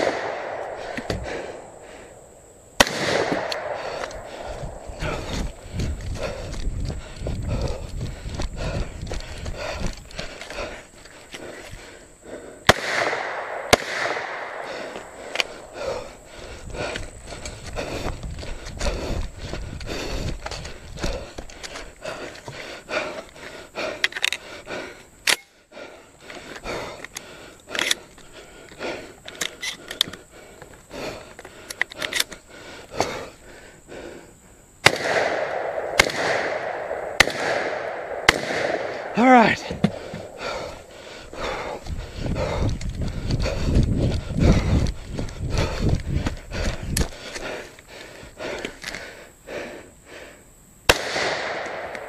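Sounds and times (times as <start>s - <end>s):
rifle shots echoing: 0.0s - 1.4s, 2.8s - 4.8s, 12.7s - 14.9s, 34.8s - 39.4s, 50.9s - 52.0s
scuffing footsteps: 3.3s - 11.9s, 14.7s - 23.6s, 39.5s - 49.1s.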